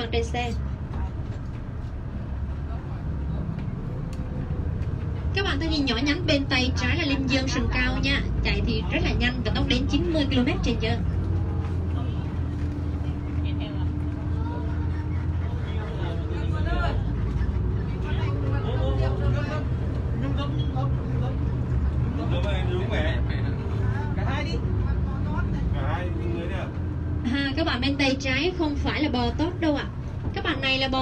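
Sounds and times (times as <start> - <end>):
bus engine rumble: 0.0 - 31.0
quiet passenger voices: 0.0 - 31.0.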